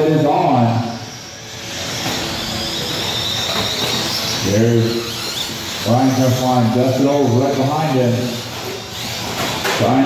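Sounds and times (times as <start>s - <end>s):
high-pitched motor whine: 0.0s - 10.0s
tyre and chassis noise: 1.0s - 10.0s.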